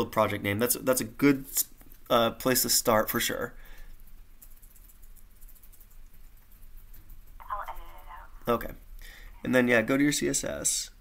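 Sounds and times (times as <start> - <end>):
call line hum and hiss: 5.2 - 11.0.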